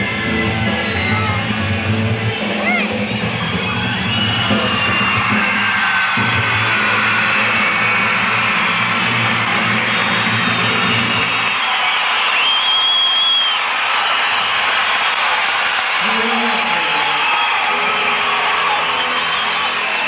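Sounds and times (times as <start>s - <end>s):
crowd cheering and screaming: 0.0s - 20.0s
high held scream: 3.6s - 14.6s.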